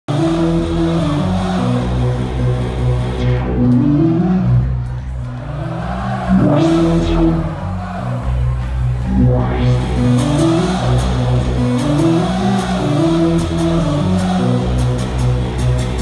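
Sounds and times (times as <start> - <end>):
growling synth bass: 0.1 - 16.0
dubstep through club sound system: 6.3 - 14.0.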